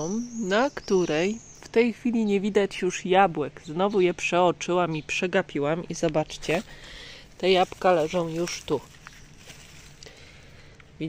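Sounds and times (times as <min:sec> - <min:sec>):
rustling leaves and stems: 0:05.5 - 0:11.0.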